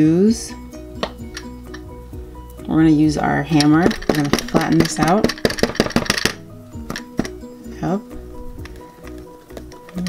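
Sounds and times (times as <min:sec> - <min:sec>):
light background music: 0:00.0 - 0:10.0
toy hammer tapping dough: 0:03.6 - 0:07.4.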